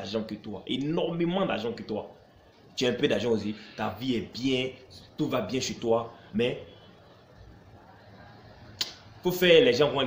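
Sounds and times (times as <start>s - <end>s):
man talking: 0.0s - 2.2s, 2.8s - 6.8s, 9.2s - 10.0s
faint room noise: 0.0s - 10.0s.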